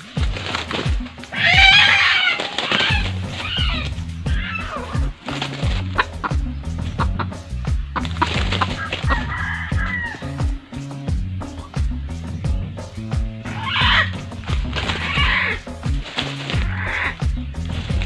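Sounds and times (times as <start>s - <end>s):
music with low beat: 0.0s - 18.0s
rooster crowing: 1.2s - 5.3s, 8.6s - 10.6s, 13.5s - 14.2s, 14.8s - 15.6s.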